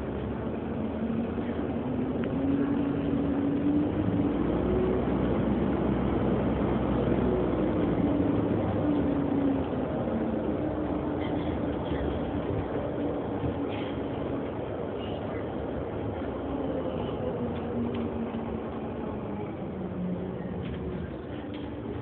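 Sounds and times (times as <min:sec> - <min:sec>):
bus drive and road rumble: 0:00.0 - 0:22.0
bus motor whine: 0:00.0 - 0:22.0.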